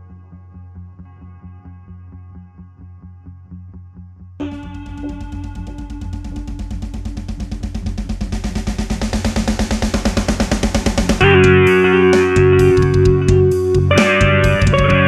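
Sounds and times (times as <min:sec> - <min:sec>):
fast drum roll: 0:04.4 - 0:15.0
heavy guitar riff with drums: 0:04.4 - 0:15.0.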